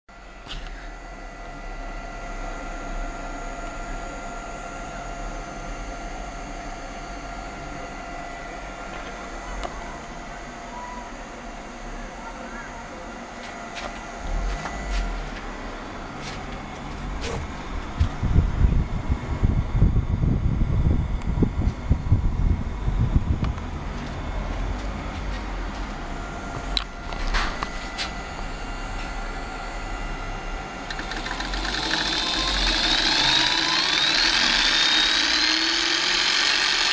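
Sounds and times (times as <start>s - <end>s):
milling machine motor whine: 0.1s - 36.9s.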